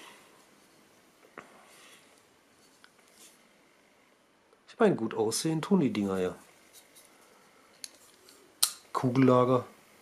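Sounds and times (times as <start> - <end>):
metallic snap of knife blade: 8.6 - 8.8.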